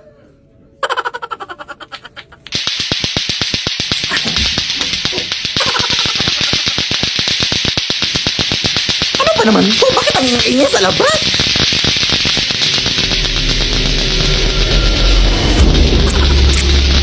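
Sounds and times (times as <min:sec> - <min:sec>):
plastic clacker balls clacking: 0:02.3 - 0:13.0.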